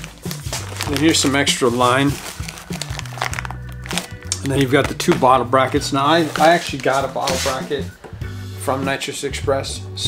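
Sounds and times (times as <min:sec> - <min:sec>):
plastic packaging crinkling: 0:00.0 - 0:07.6
background music: 0:00.0 - 0:10.0.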